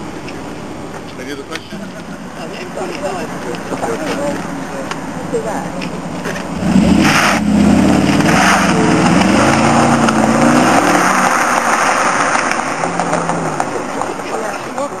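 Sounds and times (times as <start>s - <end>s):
car engine accelerating: 0.0s - 15.0s.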